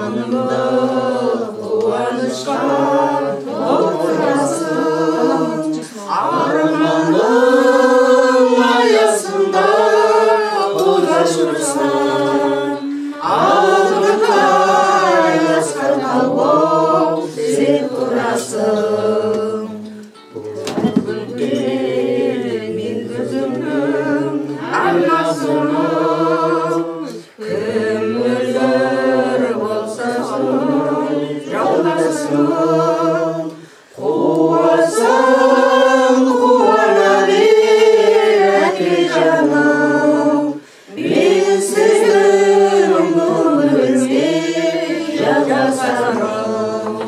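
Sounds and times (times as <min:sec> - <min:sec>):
voices singing together: 0:00.0 - 0:47.0.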